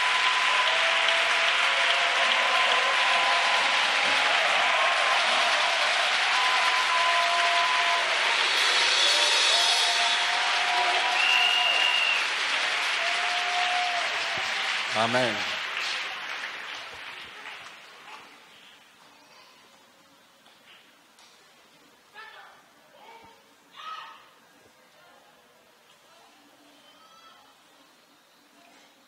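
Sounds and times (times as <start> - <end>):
congregation clapping: 0.0 - 18.5.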